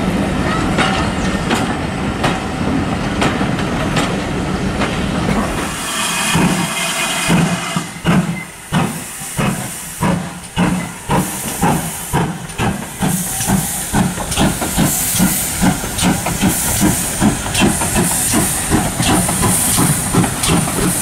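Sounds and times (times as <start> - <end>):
steam locomotive exhaust beats: 0.6 - 21.0
hiss of steam: 5.4 - 21.0.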